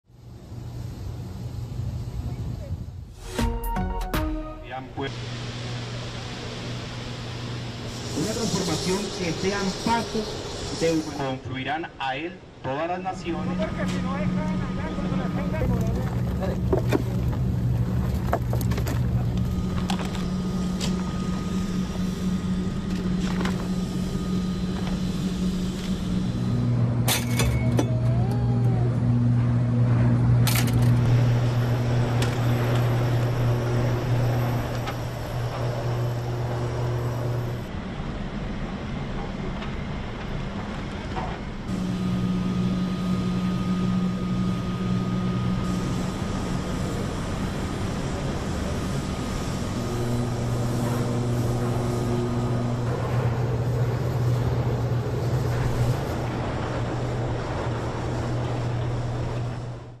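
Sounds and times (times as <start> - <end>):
heavy machinery humming: 0.0 - 60.0
thin steady whine: 0.1 - 3.3, 4.6 - 60.0.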